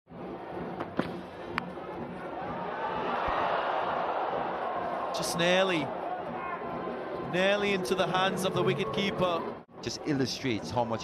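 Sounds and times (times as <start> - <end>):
stadium crowd noise: 0.1 - 11.0.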